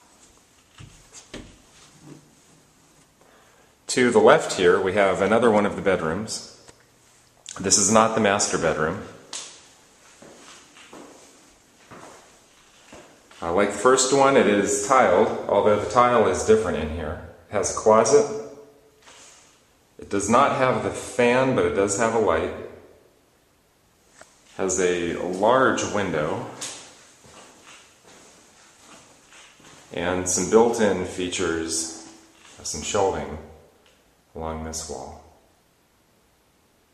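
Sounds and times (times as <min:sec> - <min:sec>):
footsteps on tile floor: 0:00.0 - 0:03.2, 0:10.0 - 0:13.4, 0:26.6 - 0:29.9.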